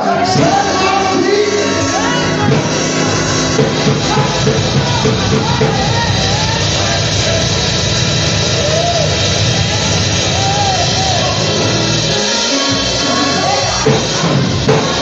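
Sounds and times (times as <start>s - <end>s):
person singing: 0.0s - 9.2s
church band playing gospel music: 0.0s - 15.0s.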